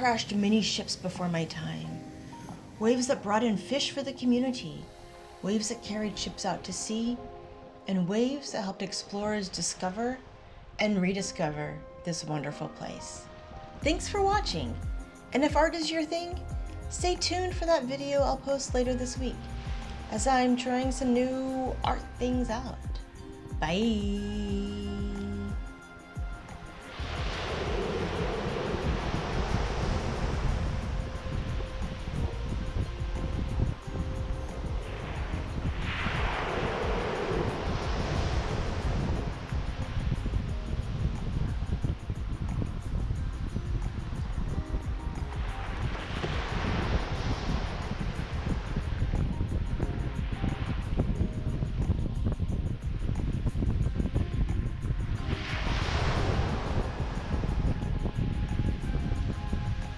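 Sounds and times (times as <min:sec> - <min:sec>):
soft background music: 0:00.0 - 0:59.9
wind rumble on microphone: 0:13.8 - 0:59.9
small waves washing on sand: 0:26.3 - 0:59.9.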